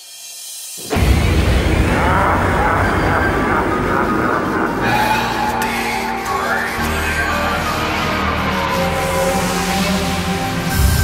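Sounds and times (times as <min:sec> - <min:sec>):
loud rushing noise: 0:00.8 - 0:11.0
sweeping wavering tones: 0:03.6 - 0:11.0.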